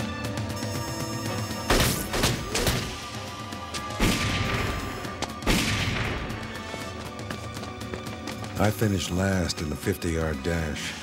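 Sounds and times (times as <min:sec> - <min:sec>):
background music: 0:00.0 - 0:11.0
gunshots echoing: 0:05.4 - 0:06.5.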